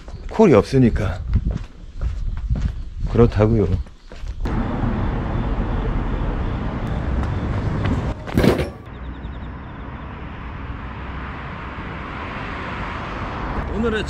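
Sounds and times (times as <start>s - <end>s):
city traffic passing: 4.3s - 14.0s.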